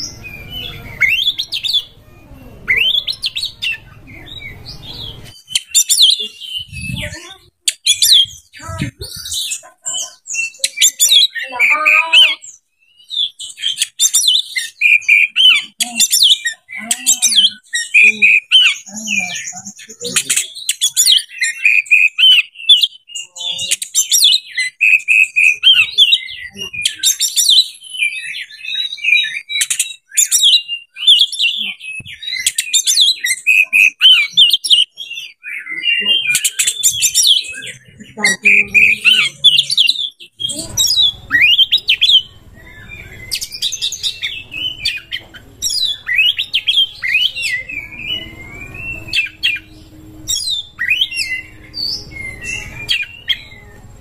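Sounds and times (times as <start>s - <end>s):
bird singing whistled phrases: 10.4s - 19.3s, 20.0s - 53.8s.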